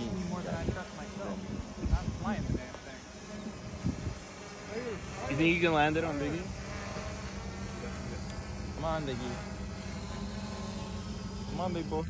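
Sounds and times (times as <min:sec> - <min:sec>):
drone propellers humming: 0:00.0 - 0:12.0.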